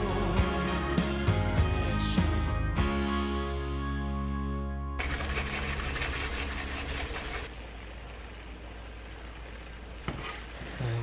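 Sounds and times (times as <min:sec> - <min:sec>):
soft music chord: 0:00.0 - 0:05.0.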